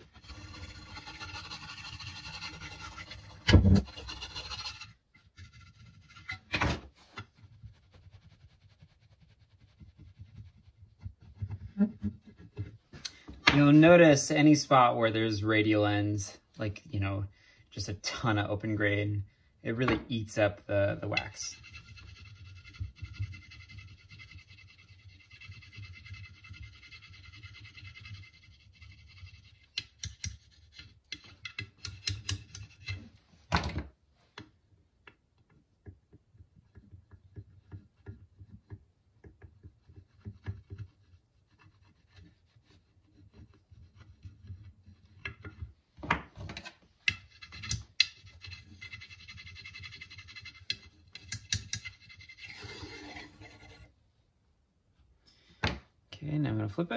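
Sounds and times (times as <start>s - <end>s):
metal tool scraping wooden handle: 0.0s - 6.6s, 21.0s - 33.2s, 46.5s - 53.9s.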